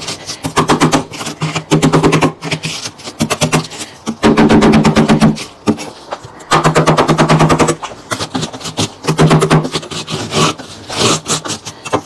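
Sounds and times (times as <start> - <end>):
plastic scraper scraping frost: 0.0 - 12.0.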